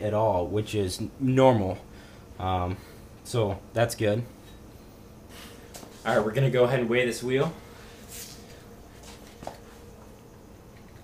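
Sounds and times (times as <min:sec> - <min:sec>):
low steady background hum: 0:00.0 - 0:11.0.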